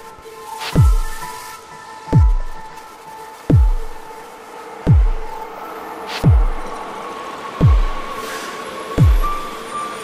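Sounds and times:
deep kick drum with falling pitch: 2.2s - 2.5s, 3.5s - 3.9s, 4.9s - 5.3s, 6.2s - 6.7s, 7.6s - 8.1s, 9.0s - 9.3s.

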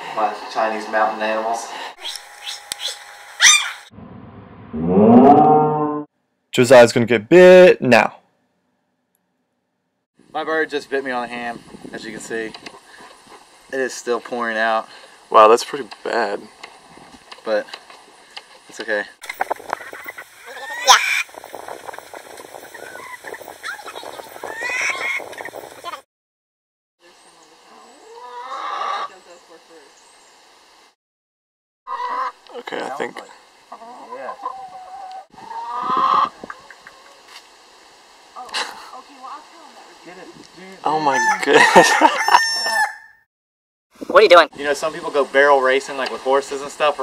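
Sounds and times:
cockatoo squawk: 2.0s - 3.9s, 20.4s - 21.3s, 22.9s - 25.2s, 41.1s - 43.2s
hens clucking: 19.6s - 21.3s, 22.6s - 25.9s, 28.0s - 29.2s, 31.9s - 32.4s, 33.7s - 37.2s.

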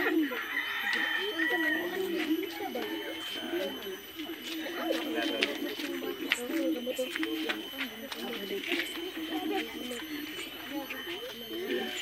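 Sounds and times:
rooster crowing: 0.0s - 3.8s
woman talking: 1.5s - 12.0s.

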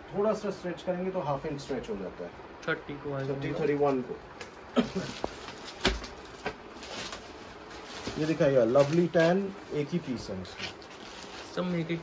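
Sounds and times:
plastic wrapping crinkle: 4.5s - 12.0s.

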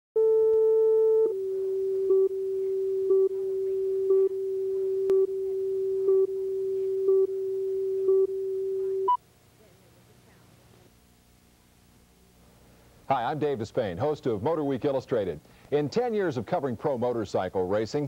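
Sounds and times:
faint tape hiss: 0.2s - 18.0s
steady reference tone: 0.8s - 9.2s
countdown beeps: 1.0s - 9.2s
higher beep: 1.0s - 9.2s.

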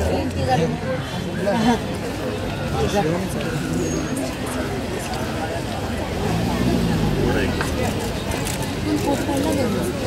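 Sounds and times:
crowd voices: 0.0s - 10.0s
vehicle engine humming: 5.2s - 10.0s.

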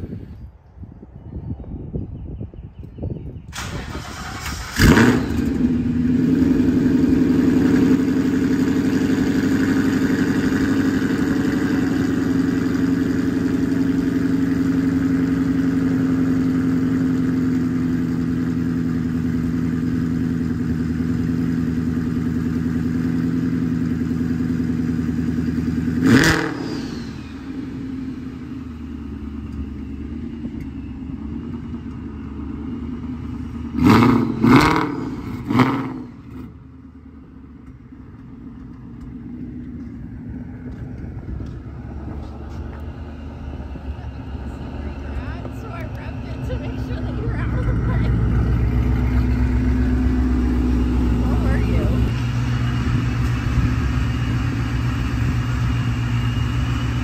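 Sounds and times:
car engine revving: 3.6s - 29.6s, 30.2s - 36.6s, 41.4s - 57.0s
car engine idling: 3.6s - 57.0s.

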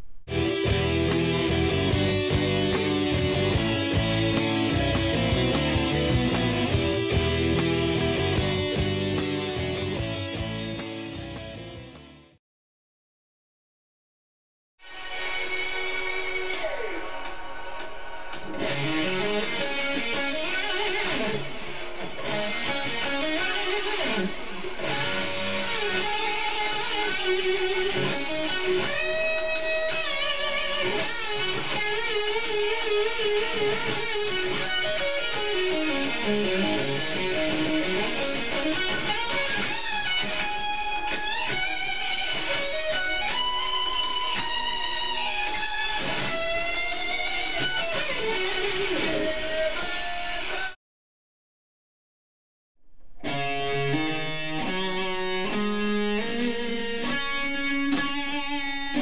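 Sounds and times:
electric guitar rock solo: 0.3s - 12.3s, 14.8s - 50.8s, 53.2s - 59.0s.

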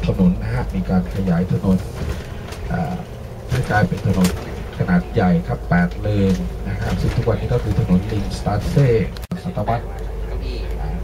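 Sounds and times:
man narrating: 0.0s - 11.0s
steady low rumble: 0.0s - 11.0s.

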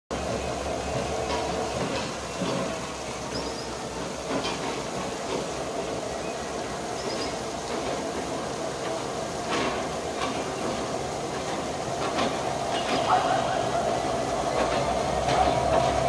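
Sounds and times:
diesel locomotive engine hum: 0.1s - 16.0s.

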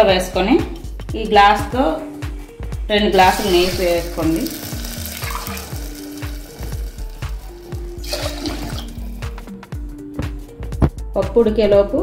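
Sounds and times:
background music: 0.0s - 12.0s
water pouring and splashing: 3.1s - 9.4s.

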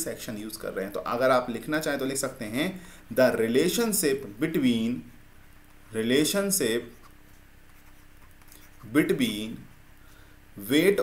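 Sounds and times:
man talking: 0.0s - 5.1s, 5.9s - 7.0s, 8.8s - 9.7s, 10.6s - 11.0s
faint hum: 0.0s - 11.0s
stylus scratching on tablet: 6.8s - 9.9s.

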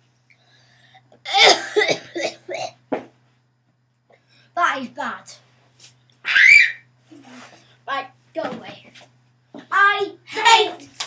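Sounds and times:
boy coughing: 1.2s - 2.8s.

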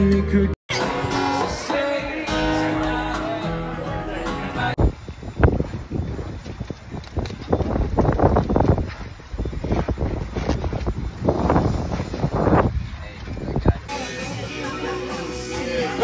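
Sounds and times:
wind buffeting microphone: 4.8s - 13.9s.

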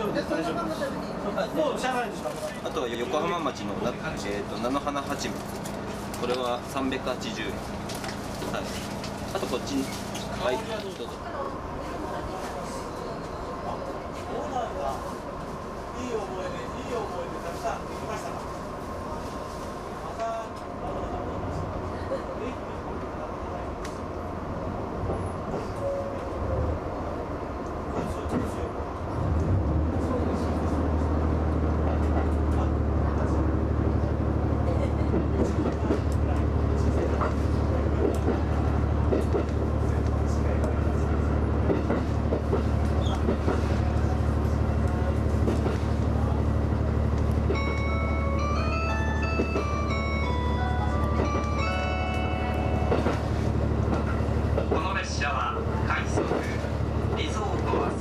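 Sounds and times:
railcar low drone: 0.0s - 58.0s.

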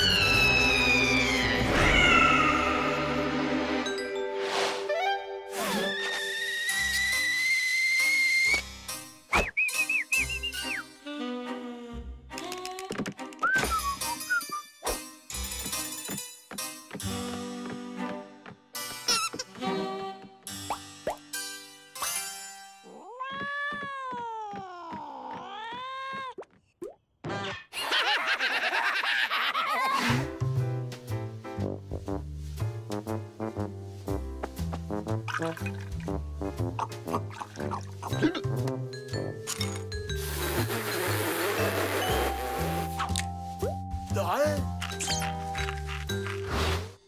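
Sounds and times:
cartoon whistle: 0.0s - 2.8s, 13.4s - 14.6s
background music: 0.0s - 22.9s, 29.8s - 47.0s
cackling cartoon laughter: 27.7s - 30.1s
cartoon music: 44.1s - 46.2s.

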